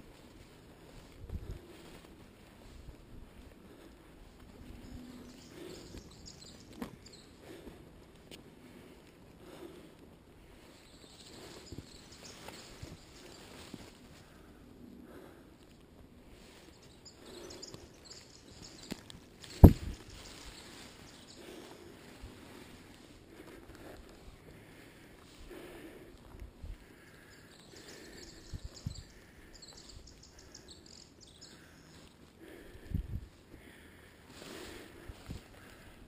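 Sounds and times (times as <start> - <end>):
footsteps on dirt trail: 0.0 - 36.0
fern fronds brushing: 10.4 - 14.5, 16.3 - 23.3.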